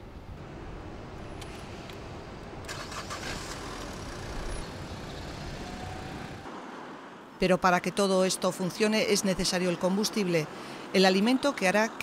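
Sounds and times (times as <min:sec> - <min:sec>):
car engine starting and running: 0:00.4 - 0:06.5.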